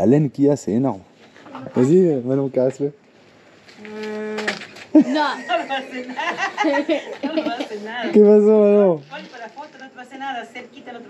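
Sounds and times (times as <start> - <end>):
quiet talking of several people: 0.0 - 11.0.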